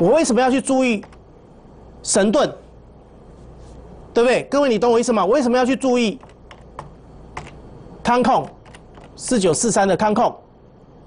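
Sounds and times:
computer keyboard keystrokes: 1.0 - 1.2, 6.2 - 7.6, 8.4 - 9.2.

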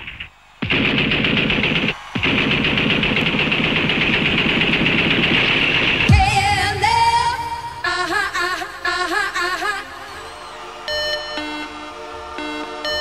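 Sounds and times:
machine-gun fire: 0.0 - 8.0
electronic dance music: 0.0 - 13.0.

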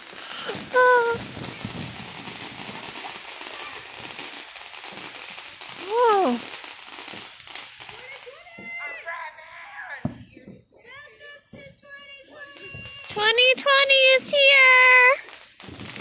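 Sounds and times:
firecrackers crackling: 0.0 - 16.0
person whooping: 5.8 - 6.4.

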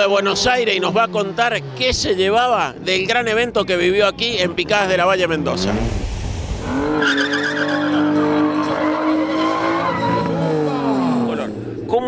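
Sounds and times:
car engine at high revs: 0.3 - 11.9
tyres squealing: 6.8 - 11.2.

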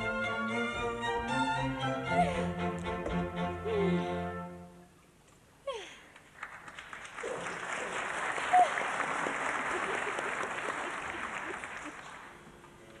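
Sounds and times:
audience applauding: 6.1 - 12.4.

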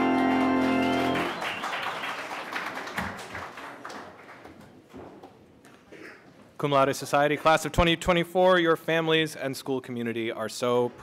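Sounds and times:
organ chord: 0.0 - 1.8
congregation rustling and shuffling: 0.0 - 8.7.

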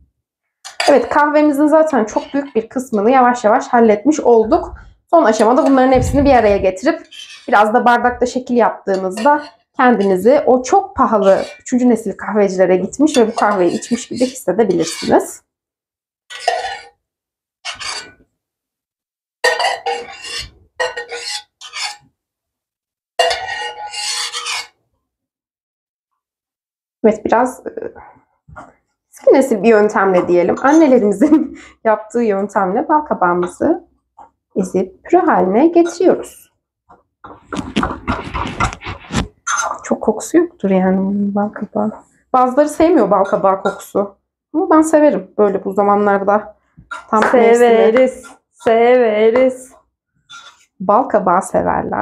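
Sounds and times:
metal utensil scraping a dish: 0.7 - 15.4, 16.3 - 16.9, 17.6 - 18.2, 19.4 - 22.0, 23.2 - 24.8, 29.2 - 31.2, 35.4 - 36.4, 37.4 - 40.1, 41.9 - 44.0, 46.9 - 48.8, 49.4 - 50.7.

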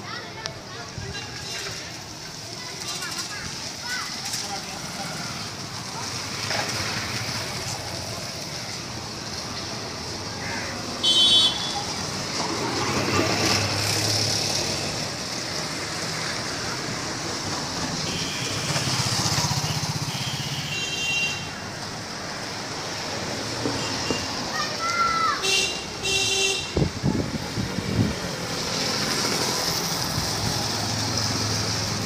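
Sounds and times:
motorcycles and cars passing: 0.0 - 32.0
vehicle horn toot: 11.0 - 11.8, 18.1 - 18.8, 19.7 - 21.5, 25.4 - 26.8.

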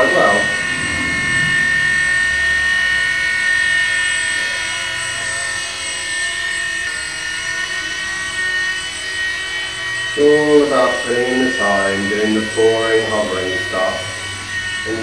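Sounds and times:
small helicopter motor whine: 0.0 - 15.0.

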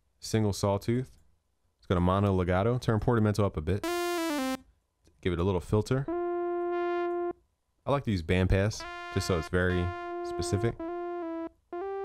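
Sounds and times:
synthesizer held sawtooth note: 3.8 - 4.6, 6.1 - 7.4, 8.8 - 12.0.

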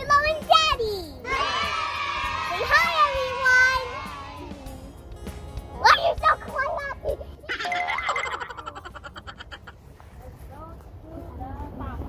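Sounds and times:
background music: 0.0 - 9.7
boing sound effect: 7.5 - 8.8.

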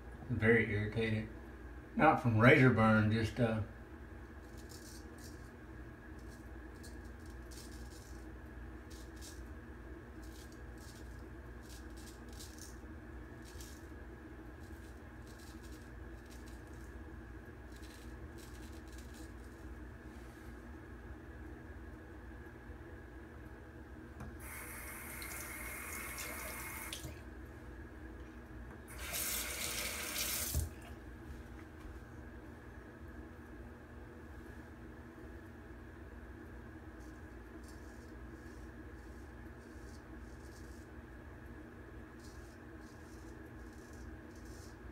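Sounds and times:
steady room hum: 0.0 - 44.9.

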